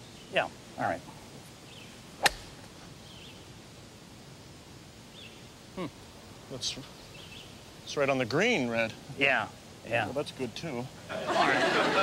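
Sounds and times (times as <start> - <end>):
golf club striking ball: 2.2 - 2.6.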